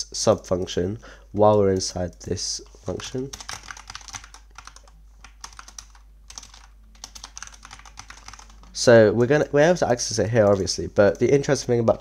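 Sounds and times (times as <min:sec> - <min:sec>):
computer keyboard typing: 0:01.4 - 0:08.8, 0:09.8 - 0:11.7.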